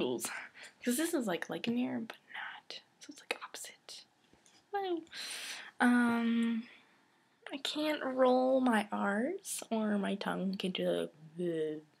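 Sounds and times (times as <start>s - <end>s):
woman whispering: 2.2s - 4.1s.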